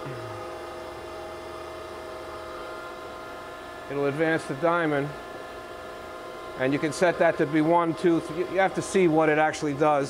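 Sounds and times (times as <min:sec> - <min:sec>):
surface grinder humming: 0:06.4 - 0:10.0.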